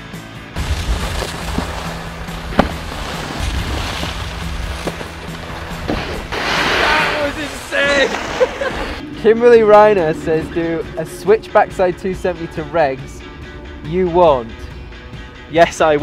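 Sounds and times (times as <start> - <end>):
background music: 0.0 - 16.0
snowboard knocks: 0.6 - 8.4
spraying snow hiss: 0.6 - 9.0
snowboard scraping over snow: 0.6 - 12.9
wind rumbling on microphone: 0.6 - 14.8.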